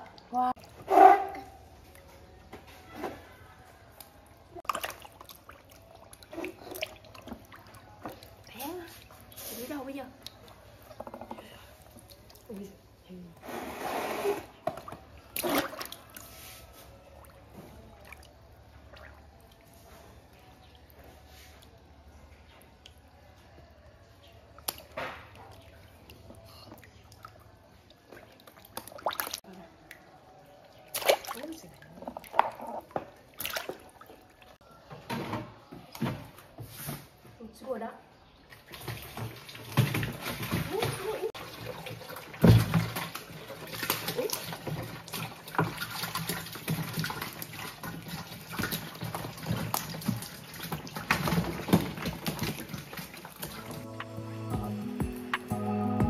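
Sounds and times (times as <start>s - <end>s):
water splashing in a plastic tub: 3.9s - 13.4s, 14.1s - 34.6s, 38.2s - 54.2s.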